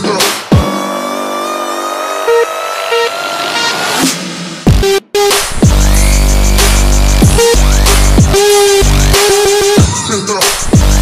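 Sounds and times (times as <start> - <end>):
synth stabs: 0.5 - 10.2.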